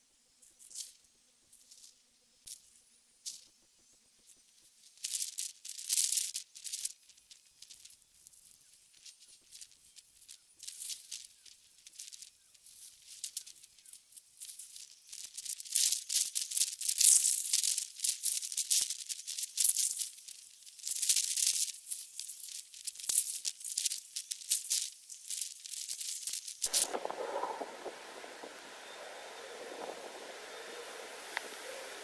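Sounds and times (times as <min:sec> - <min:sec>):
dry rattling hiss: 0:04.9 - 0:32.0.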